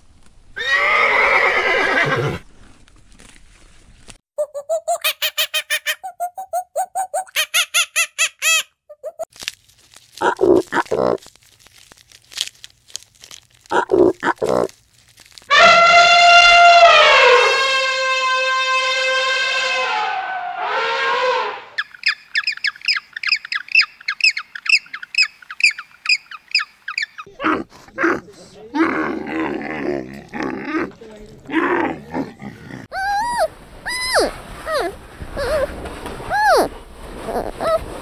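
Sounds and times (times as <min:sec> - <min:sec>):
elephant trumpeting: 0:15.5 - 0:21.8.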